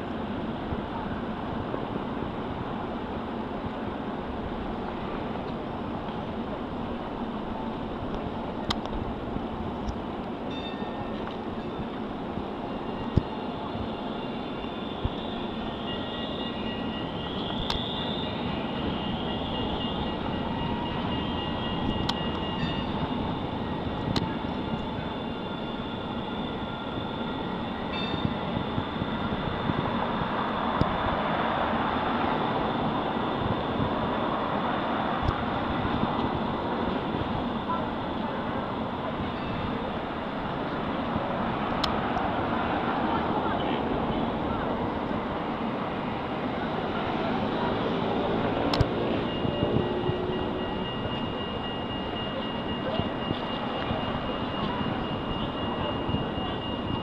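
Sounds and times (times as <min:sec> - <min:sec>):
rumble of passing vehicles: 0:00.0 - 0:57.0
faint high squealing tones: 0:10.5 - 0:12.0, 0:12.6 - 0:30.8, 0:36.0 - 0:41.0, 0:48.0 - 0:57.0.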